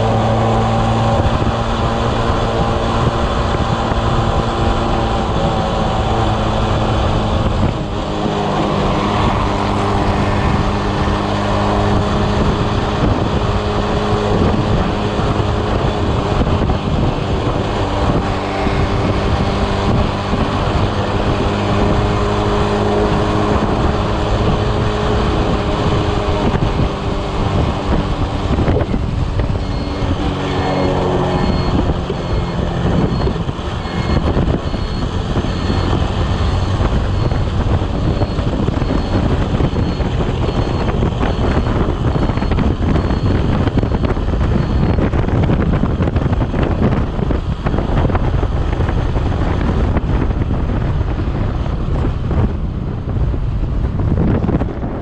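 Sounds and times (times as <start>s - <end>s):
scooter engine running: 0.0s - 52.4s
wind rushing over microphone: 0.0s - 55.0s.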